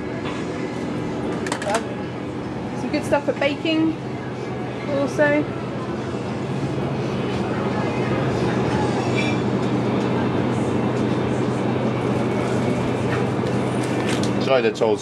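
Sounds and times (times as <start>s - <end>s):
faint voices: 0.0s - 13.4s
low mechanical hum: 0.0s - 15.0s.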